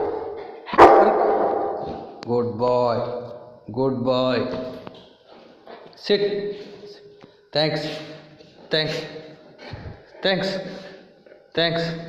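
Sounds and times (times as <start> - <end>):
dog barking in hallway: 0.0 - 2.2.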